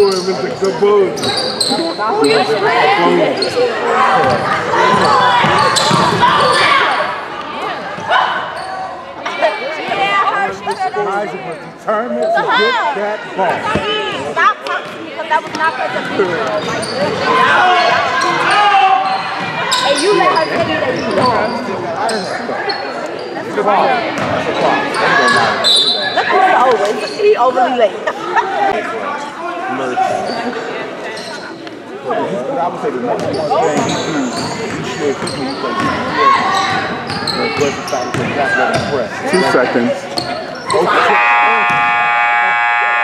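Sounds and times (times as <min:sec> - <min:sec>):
sneakers squeaking on hardwood: 0:00.0 - 0:07.2, 0:14.8 - 0:23.4, 0:33.2 - 0:39.1, 0:40.1 - 0:42.0
spectators talking: 0:00.0 - 0:43.0.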